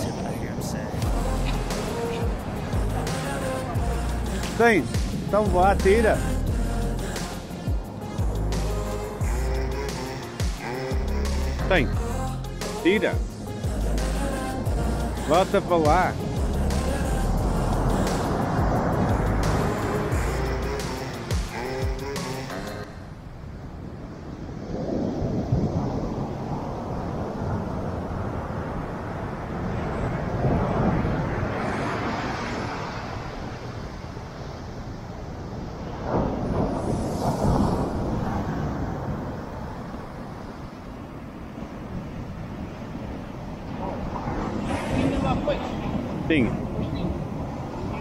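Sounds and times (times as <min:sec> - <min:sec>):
ocean surf breaking on beach: 0:00.0 - 0:06.3, 0:12.6 - 0:48.0
wind buffeting microphone: 0:00.0 - 0:08.5, 0:13.1 - 0:21.3, 0:22.8 - 0:48.0.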